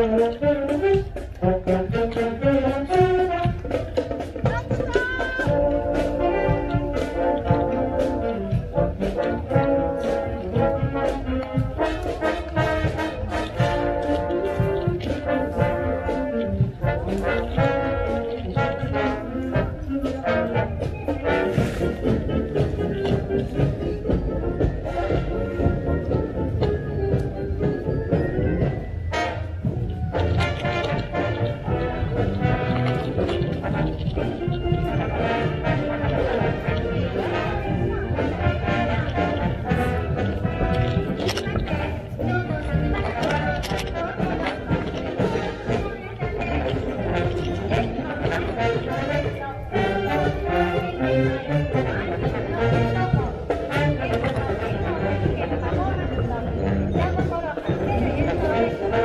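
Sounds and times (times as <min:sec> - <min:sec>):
brass section playing tune: 0:00.0 - 0:59.0
steady drum beat: 0:00.0 - 0:59.0.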